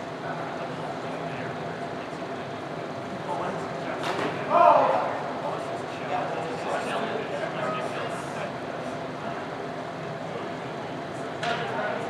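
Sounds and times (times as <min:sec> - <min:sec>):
people talking in a hall: 0:00.0 - 0:12.0.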